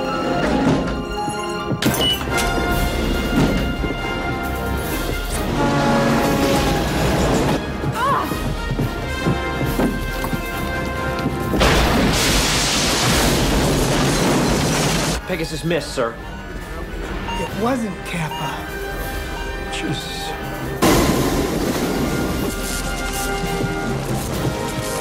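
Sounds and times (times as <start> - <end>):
tense orchestral music: 0.0 - 25.0.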